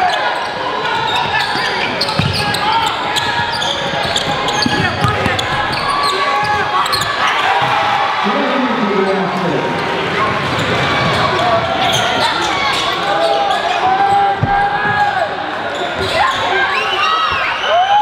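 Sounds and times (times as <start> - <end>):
people shouting and chattering: 0.0 - 18.0
basketball bouncing on hardwood: 4.5 - 5.8.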